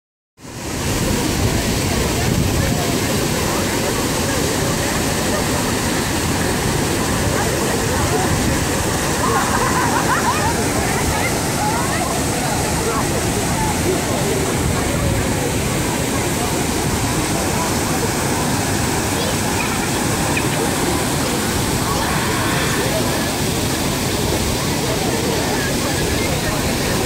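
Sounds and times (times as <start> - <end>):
waterfall rushing: 0.4 - 27.0
chatter and calls of bathers: 0.9 - 27.0.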